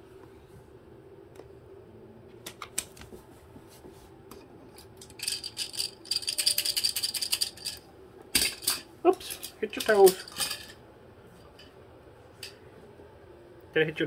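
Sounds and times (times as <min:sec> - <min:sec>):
bird rattling a plastic toy: 0:05.0 - 0:07.8.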